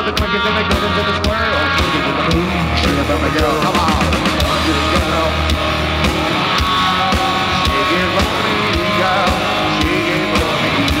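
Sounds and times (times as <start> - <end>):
drum kit steady beat: 0.0 - 11.0
live rock band playing: 0.0 - 11.0.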